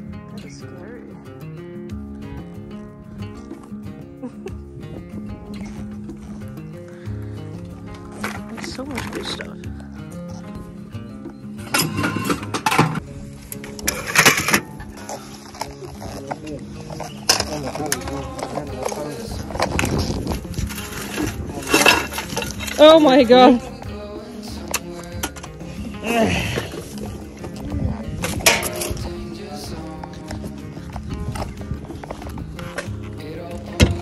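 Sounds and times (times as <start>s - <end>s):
background music: 0.0s - 34.0s
metal junk clanking: 11.6s - 13.0s, 13.6s - 23.5s, 28.2s - 29.0s.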